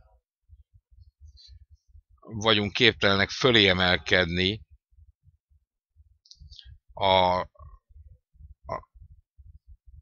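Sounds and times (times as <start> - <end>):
muffled low pulses: 0.0 - 3.0, 4.2 - 10.0.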